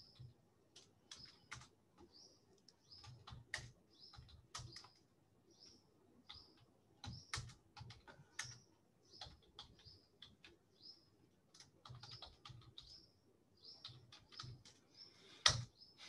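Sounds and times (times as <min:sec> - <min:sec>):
faint keyboard typing: 0:00.0 - 0:05.1, 0:06.2 - 0:15.8.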